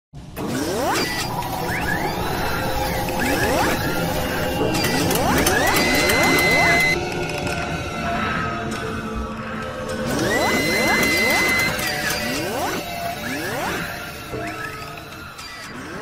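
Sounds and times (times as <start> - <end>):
rising electronic sweeps: 0.4 - 7.3, 9.8 - 16.0.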